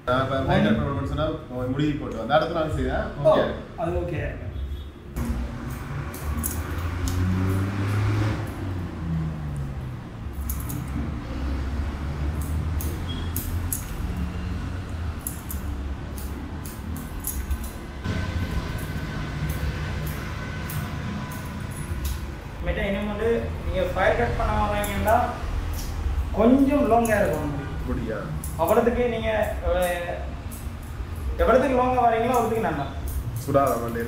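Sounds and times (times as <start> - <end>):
scissors snipping hair: 5.2 - 8.9, 9.5 - 17.9, 18.5 - 22.4, 23.8 - 27.7, 28.3 - 34.0.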